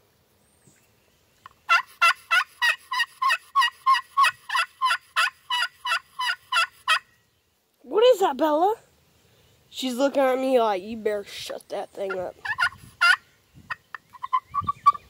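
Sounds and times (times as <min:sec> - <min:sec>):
turkey call yelps: 0:01.7 - 0:07.1, 0:12.1 - 0:15.0.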